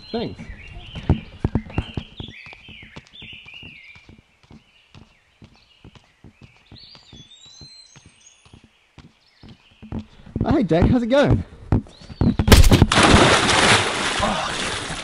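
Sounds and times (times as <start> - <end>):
birds chirping: 0.0 - 12.8
footsteps on grass: 0.0 - 12.8.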